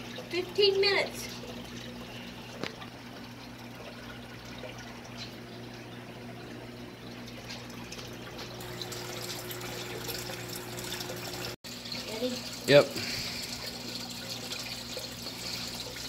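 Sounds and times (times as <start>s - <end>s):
water trickling: 0.0s - 16.0s.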